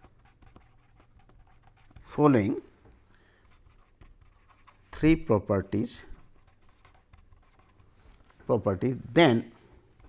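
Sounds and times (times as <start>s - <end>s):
pen scratching on paper: 0.0s - 2.4s, 3.4s - 5.3s, 6.1s - 8.3s.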